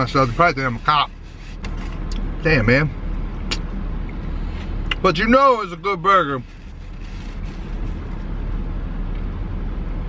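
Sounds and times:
idling engine rumble in cabin: 0.0s - 10.0s.

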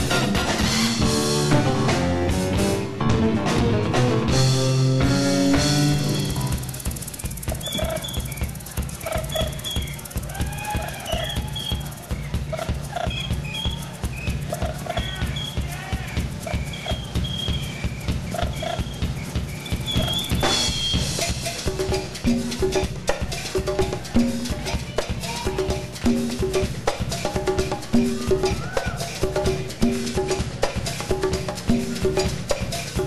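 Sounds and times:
rock band playing: 0.0s - 33.0s.

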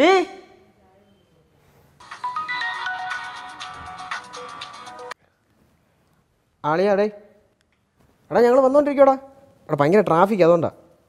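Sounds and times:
mobile phone ringtone: 2.0s - 5.1s.

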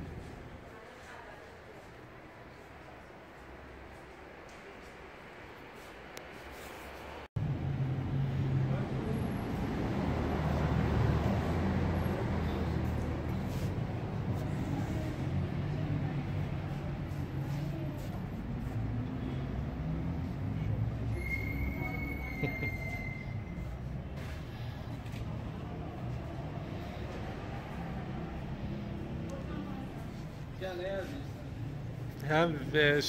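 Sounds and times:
road traffic rumble: 0.0s - 33.0s.

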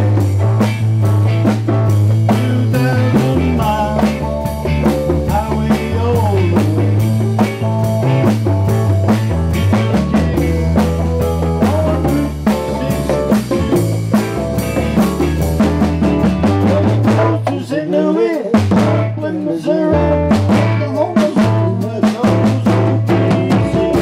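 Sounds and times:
blues rock band playing: 0.0s - 24.0s
conga drums: 0.0s - 24.0s
electric guitar: 0.0s - 24.0s.

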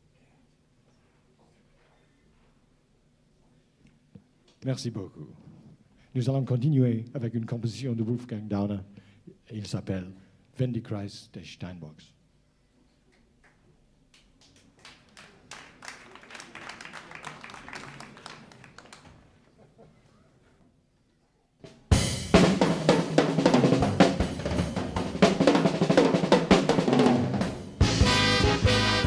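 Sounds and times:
drums: 21.6s - 29.0s
jazz-rock big band: 21.9s - 29.0s
horns: 27.8s - 29.0s.

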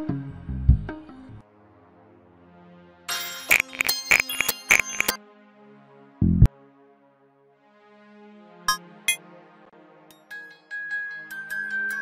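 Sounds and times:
bell-like synth arpeggio: 3.7s - 5.2s.

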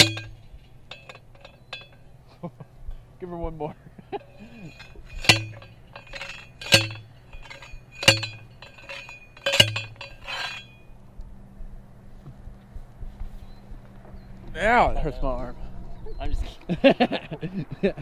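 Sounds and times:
heavy blows on metal post: 4.2s - 10.8s.

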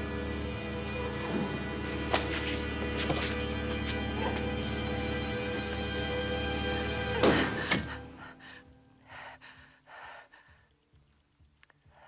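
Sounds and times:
woman gasping breaths: 7.3s - 10.7s.

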